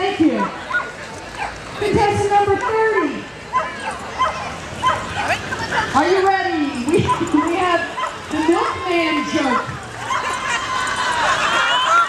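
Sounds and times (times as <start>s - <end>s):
people talking: 0.0s - 0.6s, 1.8s - 9.8s
dog barking: 0.4s - 1.6s, 2.5s - 2.9s, 3.5s - 5.4s, 7.0s - 8.2s.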